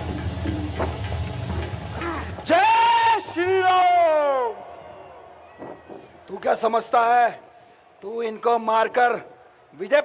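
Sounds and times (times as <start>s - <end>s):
steady hiss: 0.0s - 4.3s.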